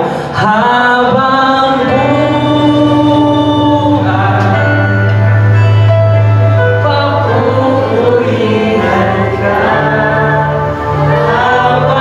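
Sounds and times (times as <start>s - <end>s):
worship band with voices singing: 0.0s - 12.0s
steady bass note: 1.9s - 12.0s.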